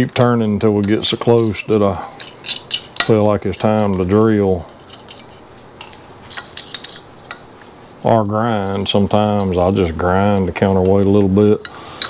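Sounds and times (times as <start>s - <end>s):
metal parts clicking: 0.8s - 7.6s.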